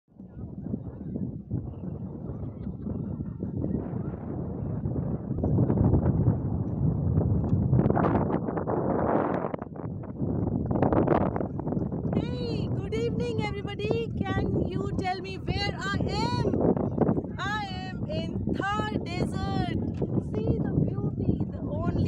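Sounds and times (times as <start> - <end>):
wind buffeting microphone: 0.1 - 22.0.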